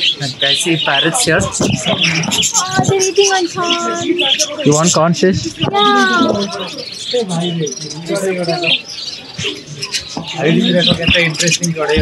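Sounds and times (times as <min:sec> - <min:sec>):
people talking: 0:00.0 - 0:12.0
small birds chirping and twittering: 0:00.0 - 0:12.0.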